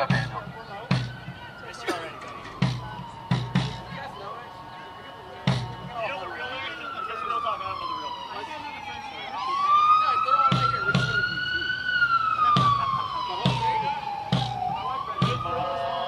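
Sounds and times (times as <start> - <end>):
music with drum beat: 0.0 - 1.4, 2.3 - 4.4, 5.4 - 6.2, 10.4 - 11.4, 12.4 - 16.0
siren wailing: 0.0 - 16.0.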